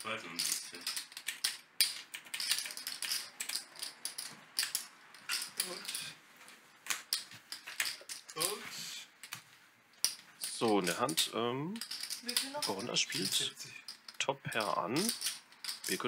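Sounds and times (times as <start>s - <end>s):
poker chips clacking: 0.0s - 6.1s, 6.9s - 8.6s, 10.0s - 16.0s.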